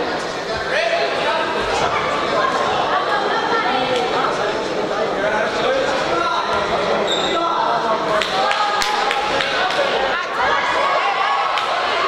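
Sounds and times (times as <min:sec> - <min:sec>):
crowd shouting: 0:07.4 - 0:12.0.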